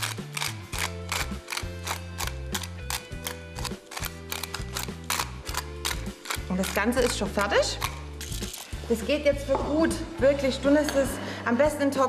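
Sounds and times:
pepper mill grinding clicks: 0.0s - 8.8s
background music with bass: 0.0s - 12.0s.

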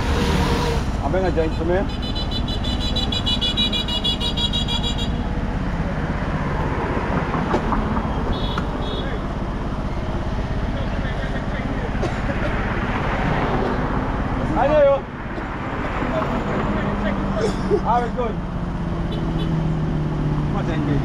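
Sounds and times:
road traffic: 0.0s - 21.0s
vehicle engine idling: 7.7s - 12.8s.

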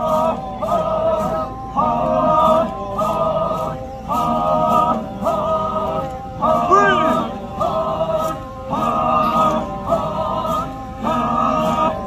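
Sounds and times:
men singing in unison: 0.0s - 12.0s.

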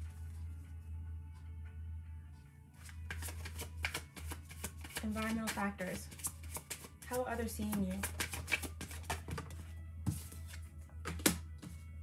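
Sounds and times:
quiet background music: 0.0s - 12.0s
cards being shuffled: 2.8s - 11.8s.

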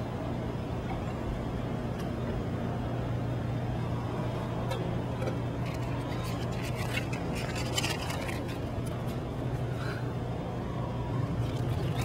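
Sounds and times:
low hum and rumble: 0.0s - 12.0s
light clicks and scrapes: 5.6s - 9.2s.

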